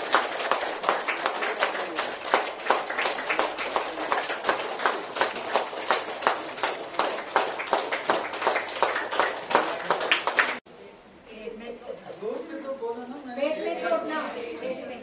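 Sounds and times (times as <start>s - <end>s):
crowd clapping: 0.0s - 10.6s.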